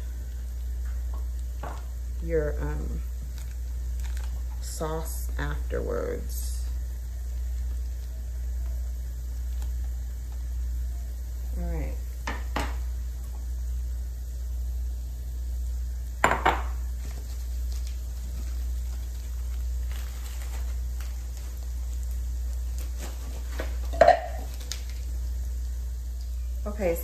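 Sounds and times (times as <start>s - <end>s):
glass bowl and utensils clinking: 23.9s - 24.4s.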